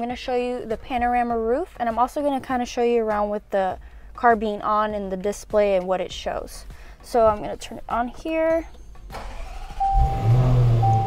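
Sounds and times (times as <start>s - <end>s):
car engine starting and idling: 8.9s - 11.0s
thin electronic tone: 9.8s - 11.0s.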